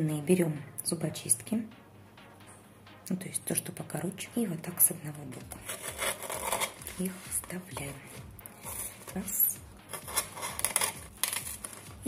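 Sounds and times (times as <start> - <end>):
artificial leaves clicking and rustling: 5.6 - 12.0.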